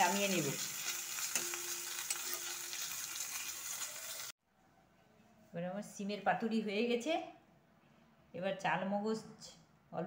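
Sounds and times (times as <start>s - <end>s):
paste sizzling in a pan: 0.0s - 4.3s.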